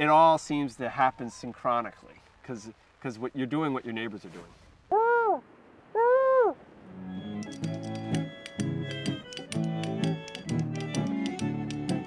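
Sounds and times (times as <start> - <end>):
animal calling: 6.0 - 6.6.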